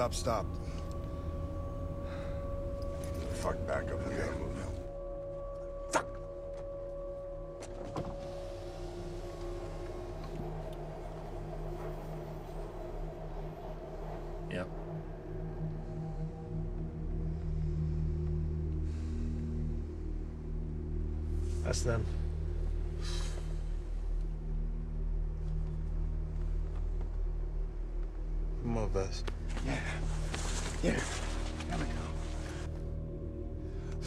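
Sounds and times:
low sustained drone: 0:00.0 - 0:34.0.

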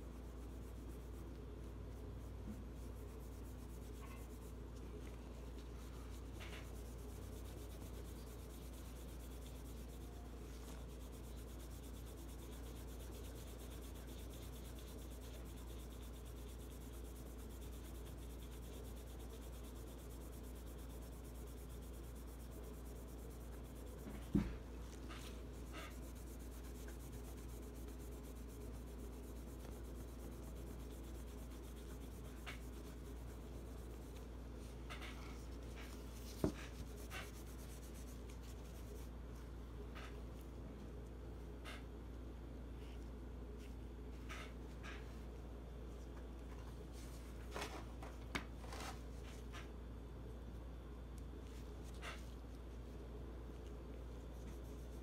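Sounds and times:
cloth rubbing on metal: 0:00.0 - 0:39.2.

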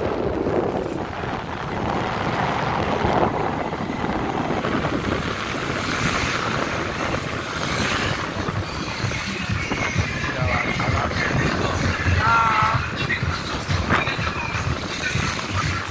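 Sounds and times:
motorbike engine running: 0:00.0 - 0:15.9
wind noise on microphone: 0:00.0 - 0:15.9.

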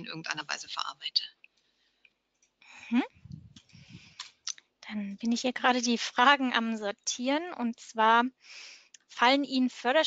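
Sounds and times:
mouth and breath noises: 0:02.6 - 0:04.4
person speaking: 0:02.8 - 0:08.2.

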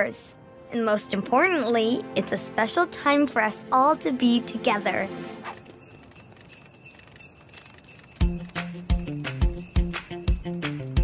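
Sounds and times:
jingle bells tinkling: 0:05.5 - 0:11.0.

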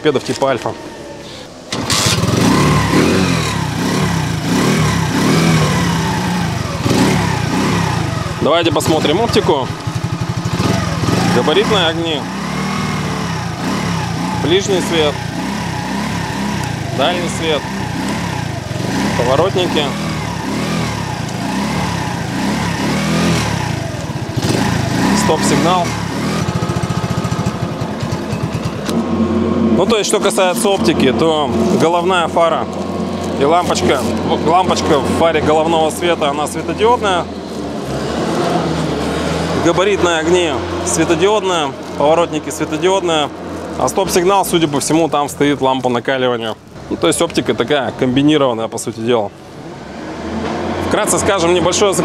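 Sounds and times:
moped engine starting and revving: 0:00.0 - 0:52.0.

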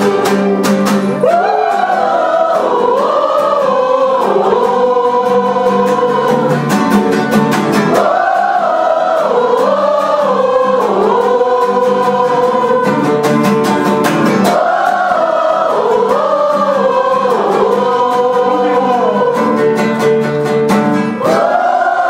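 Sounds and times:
choir singing gospel: 0:00.0 - 0:22.0
strummed acoustic guitar: 0:00.0 - 0:22.0.

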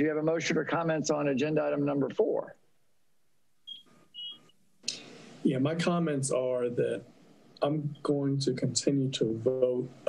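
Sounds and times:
short electronic beeps: 0:03.7 - 0:04.5
steady hiss: 0:03.9 - 0:10.0.

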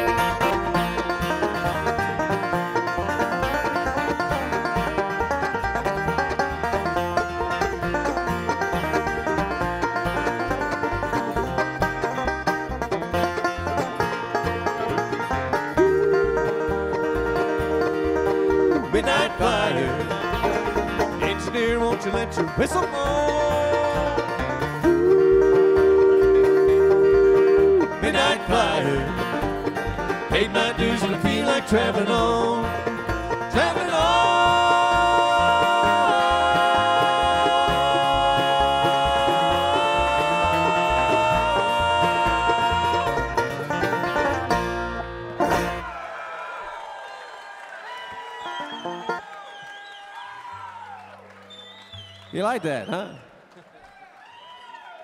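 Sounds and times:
held fiddle chords: 0:00.0 - 0:45.8
bluegrass band playing: 0:00.0 - 0:46.0, 0:48.4 - 0:49.2.

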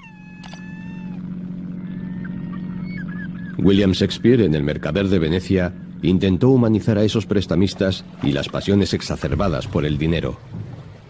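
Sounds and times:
gull crying: 0:00.0 - 0:07.8
steady low hum: 0:00.0 - 0:11.0.

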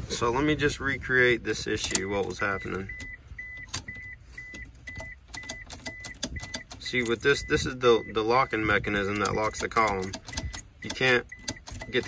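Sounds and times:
car warning chime beeping: 0:00.6 - 0:12.0
key clicking in ignition lock: 0:01.8 - 0:07.6, 0:08.6 - 0:12.0.

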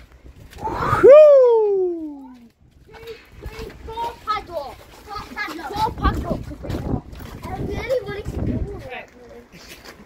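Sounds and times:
indistinct voices with children: 0:00.6 - 0:09.9.

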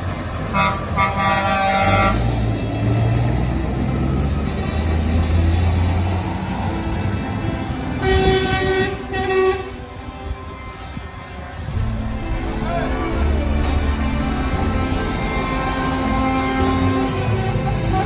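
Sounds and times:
diesel truck engines running: 0:00.0 - 0:18.0
truck air horns blasting: 0:00.4 - 0:02.7, 0:08.0 - 0:18.0.

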